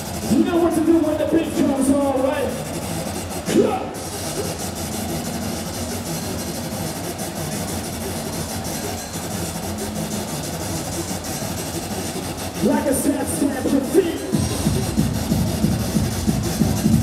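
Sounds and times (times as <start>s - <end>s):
low rumbling drone: 0.0s - 17.0s.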